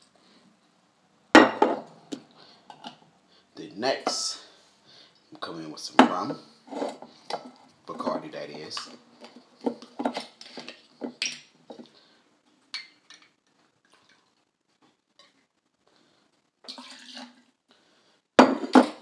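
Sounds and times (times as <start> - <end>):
glass bottle clunk on stone: 1.4 - 1.8, 18.4 - 19.0.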